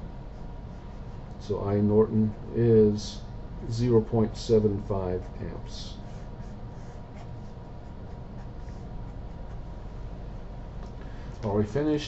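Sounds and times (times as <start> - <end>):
faint steady hum: 0.0 - 12.0
pen scratching on paper: 5.2 - 9.7.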